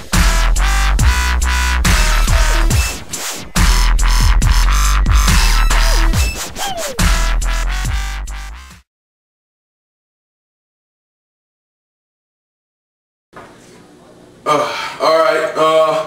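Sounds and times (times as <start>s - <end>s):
dubstep music with deep bass: 0.0s - 8.7s
falling synth glides: 5.5s - 7.5s.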